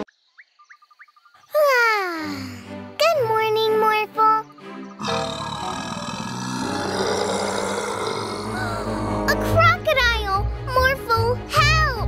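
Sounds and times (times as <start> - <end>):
background music: 1.6 - 12.0
cartoon animal roar: 5.0 - 9.4.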